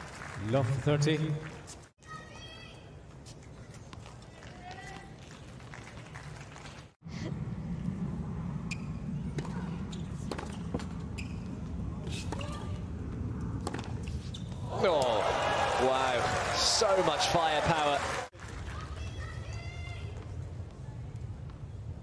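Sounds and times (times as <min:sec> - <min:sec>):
crowd cheering and applauding: 0:14.7 - 0:18.8.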